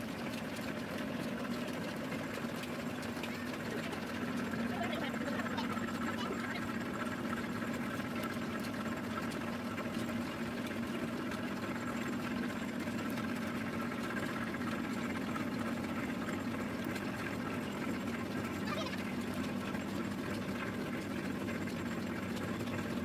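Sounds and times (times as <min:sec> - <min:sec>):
oil expeller machine humming: 0:00.0 - 0:23.0.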